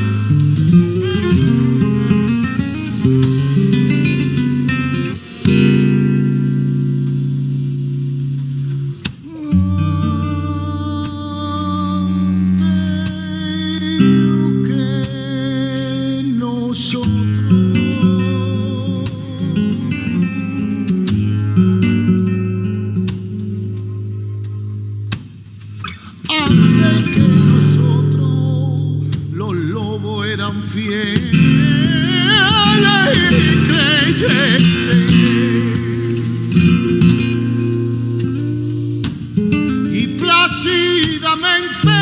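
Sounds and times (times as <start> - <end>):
man singing with vibrato: 0.0 - 5.3, 9.2 - 22.2, 25.8 - 42.0
plucked acoustic guitar: 0.0 - 42.0.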